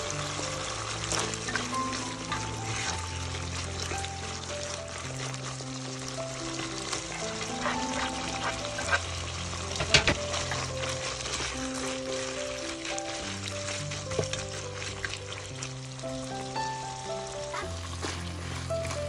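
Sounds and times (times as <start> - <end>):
background music: 0.0 - 19.0
livers sizzling in a pot: 0.0 - 19.0
spatula stirring: 0.0 - 19.0.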